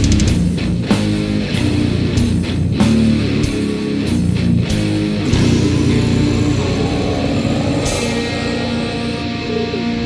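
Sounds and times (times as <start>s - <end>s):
bass guitar: 0.0s - 10.0s
distorted electric guitars: 0.0s - 10.0s
drums: 0.0s - 10.0s
cymbal crashes: 5.2s - 9.7s.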